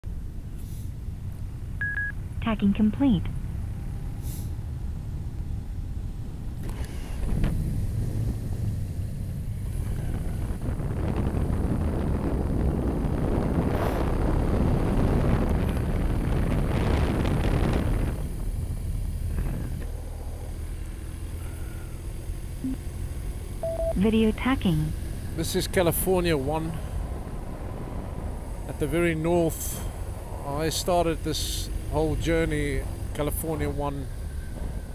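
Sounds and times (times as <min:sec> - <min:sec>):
motorcycle engine and road rumble: 0:00.0 - 0:34.9
wind rush on microphone: 0:05.5 - 0:21.5, 0:26.1 - 0:33.1.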